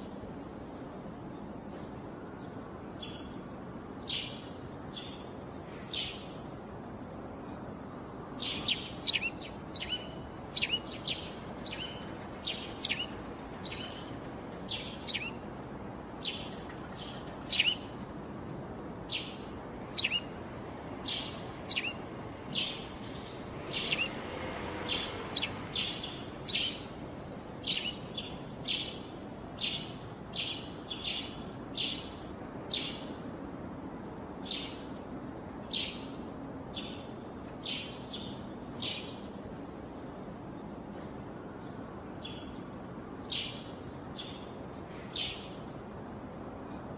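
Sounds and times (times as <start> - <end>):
low background noise: 0.0 - 46.9
small birds chirping: 8.3 - 33.6, 34.2 - 46.9.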